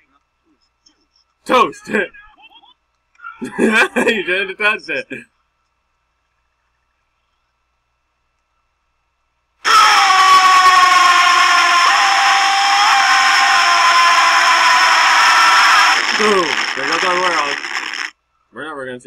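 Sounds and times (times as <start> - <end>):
harsh distorted falling tones: 9.7 - 18.1.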